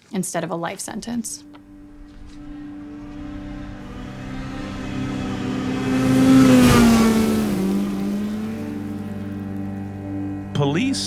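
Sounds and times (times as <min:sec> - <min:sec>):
low steady hum: 0:00.0 - 0:11.0
car passing by: 0:01.8 - 0:10.5.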